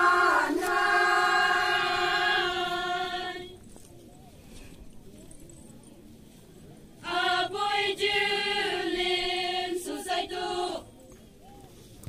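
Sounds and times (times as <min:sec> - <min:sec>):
group singing in unison: 0:00.0 - 0:03.6, 0:07.0 - 0:10.9.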